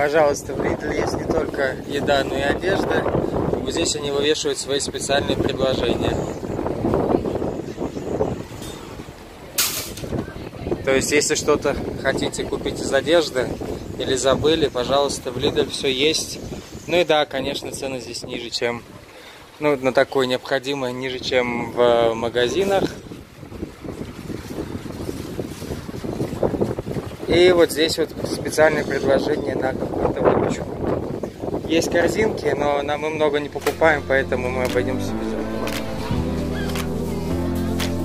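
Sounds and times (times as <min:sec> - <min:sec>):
wind buffeting microphone: 0:00.0 - 0:17.6, 0:22.5 - 0:33.5
faint street ambience: 0:00.0 - 0:23.4, 0:31.8 - 0:38.0.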